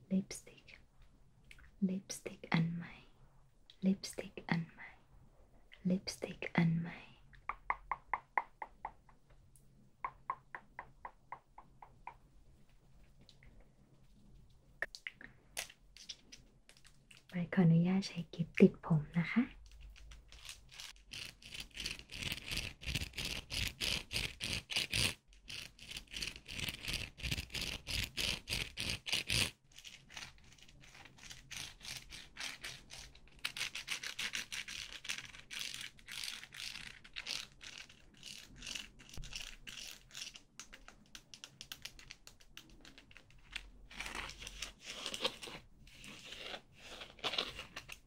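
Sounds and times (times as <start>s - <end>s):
plastic hair clip scraping: 19.6s - 48.0s.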